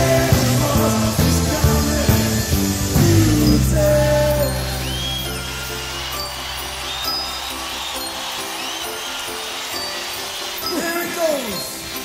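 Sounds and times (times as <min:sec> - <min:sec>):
rock band chord: 0:00.0 - 0:06.9
crowd cheering: 0:00.0 - 0:12.0
whistles: 0:02.2 - 0:12.0.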